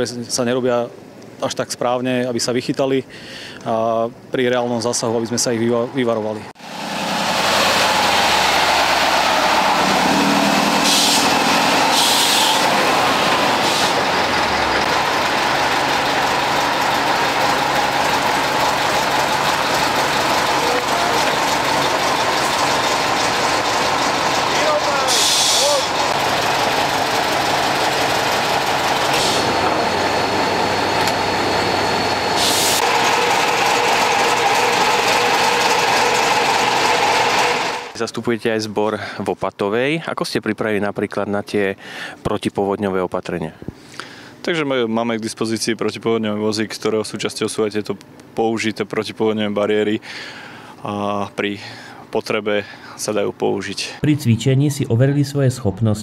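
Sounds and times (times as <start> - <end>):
diesel fire trucks driving past: 6.6 - 38.0
air hissing: 7.4 - 14.1, 25.0 - 26.6, 29.0 - 31.2, 31.9 - 34.0.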